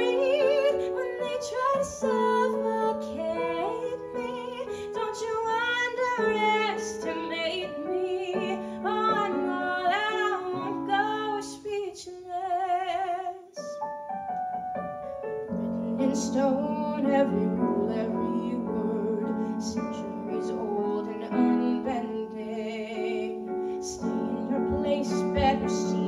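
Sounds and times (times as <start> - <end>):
woman singing with vibrato: 0.0 - 13.6, 15.6 - 26.0
piano accompaniment: 0.0 - 26.0.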